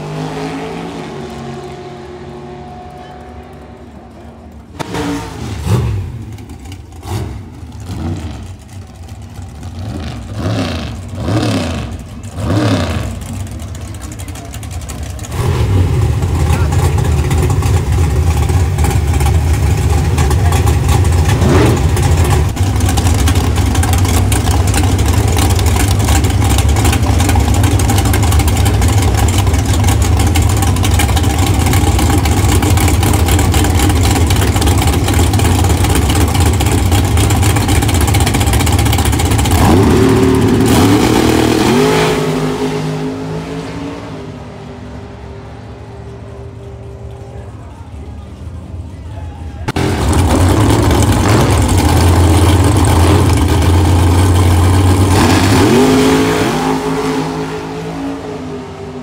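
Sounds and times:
drag car engine revving: 0:00.0 - 0:59.0.

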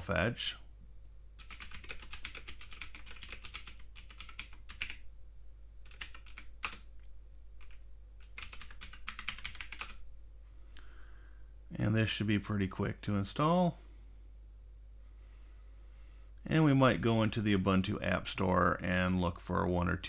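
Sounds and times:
keyboard typing: 0:01.4 - 0:05.0, 0:05.8 - 0:06.9, 0:07.6 - 0:10.0.

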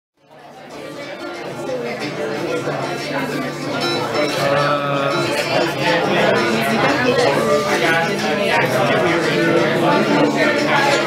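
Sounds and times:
people talking in a hall: 0:00.2 - 0:11.0.

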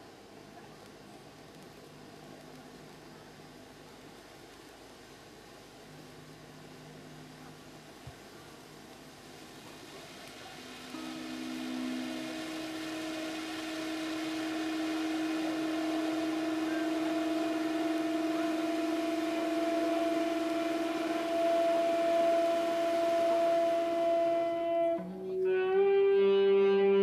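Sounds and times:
long steady held tones: 0:00.0 - 0:27.0
firework fountain hissing: 0:07.5 - 0:25.0.

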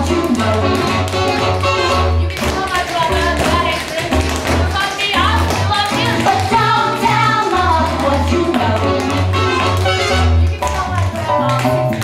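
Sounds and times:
song with bass line: 0:00.0 - 0:12.0.

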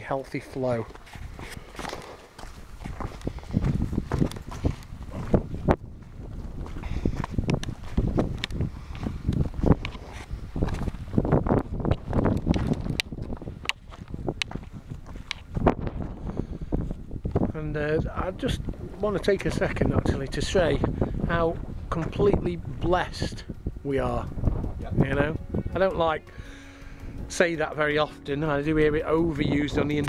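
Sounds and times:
wind buffeting microphone: 0:00.0 - 0:30.0
footsteps on rocky path: 0:00.4 - 0:17.6.

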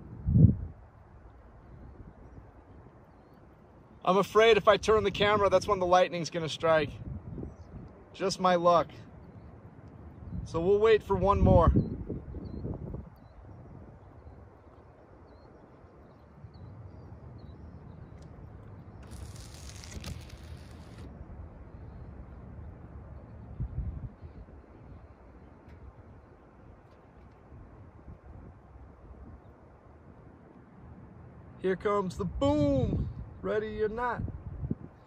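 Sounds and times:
faint bird chirps: 0:01.2 - 0:04.1, 0:11.8 - 0:21.0.

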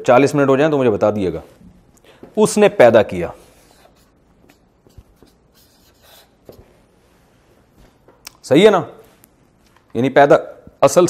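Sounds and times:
marker pen scratching on paper: 0:03.4 - 0:07.3.

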